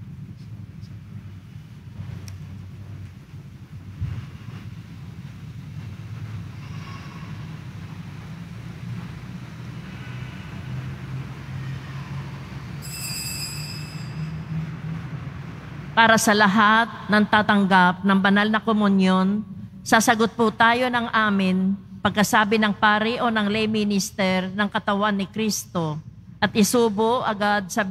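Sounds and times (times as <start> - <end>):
low room hum: 0.0 - 27.9
high-pitched ringing: 12.7 - 14.6.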